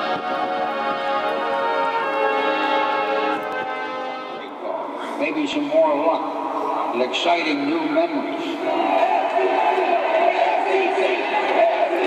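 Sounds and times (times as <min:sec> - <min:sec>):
slow brass music: 0:00.0 - 0:04.6.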